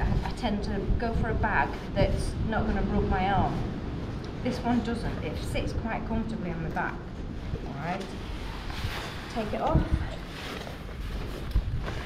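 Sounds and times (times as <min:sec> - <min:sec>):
wind noise on microphone: 0:00.0 - 0:12.0.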